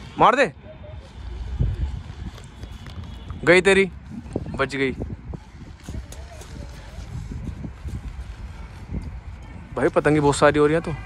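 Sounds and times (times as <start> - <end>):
wind buffeting microphone: 1.0 - 11.0.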